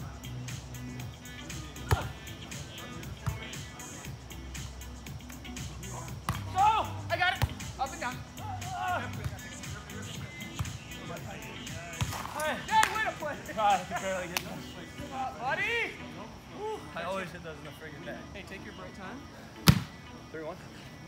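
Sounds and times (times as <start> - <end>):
background music: 0.0 - 21.0
voices: 0.0 - 21.0.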